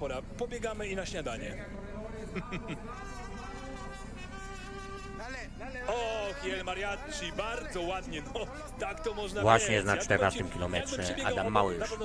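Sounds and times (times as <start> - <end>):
mariachi band playing: 3.0 - 5.4.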